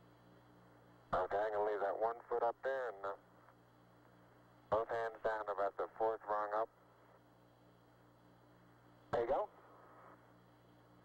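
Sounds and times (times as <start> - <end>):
radio channel hum and hiss: 0.0 - 11.0
man talking over radio: 1.2 - 3.2, 4.7 - 6.7, 9.2 - 9.5.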